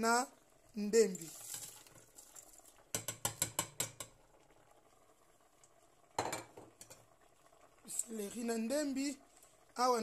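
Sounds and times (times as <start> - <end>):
bowl knocking on metal pot: 2.9 - 4.2, 6.2 - 6.7.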